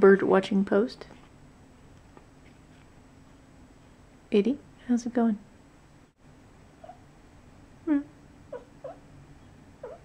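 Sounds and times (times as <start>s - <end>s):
cat chirping and mewing: 6.8s - 7.1s, 8.5s - 10.0s.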